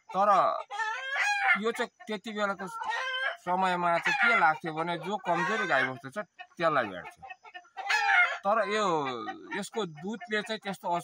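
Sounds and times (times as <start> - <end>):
rooster crowing: 5.3 - 6.0, 7.8 - 8.5.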